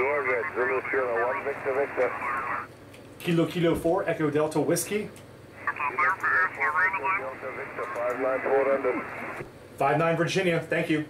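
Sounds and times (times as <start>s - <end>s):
light radio hiss: 0.0s - 2.7s, 5.6s - 9.5s
narrow-band radio speech: 0.0s - 2.7s, 5.6s - 9.4s.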